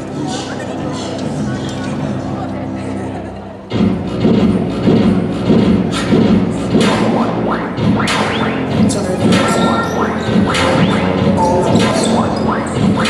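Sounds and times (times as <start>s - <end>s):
hip-hop dance track over speakers: 3.7s - 13.0s.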